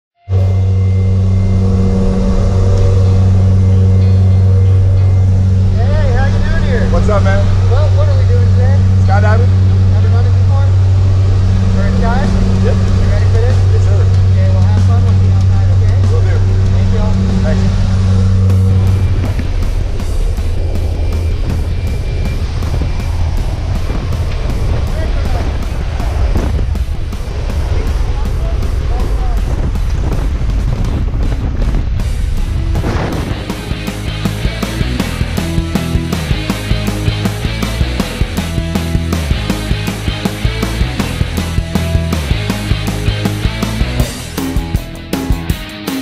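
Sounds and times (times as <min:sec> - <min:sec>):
turboprop engine drone in cabin: 0:00.2 - 0:45.2
rush of wind: 0:00.3 - 0:44.4.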